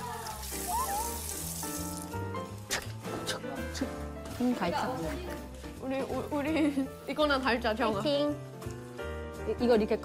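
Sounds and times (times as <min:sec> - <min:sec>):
faucet running over hands: 0:00.0 - 0:03.0.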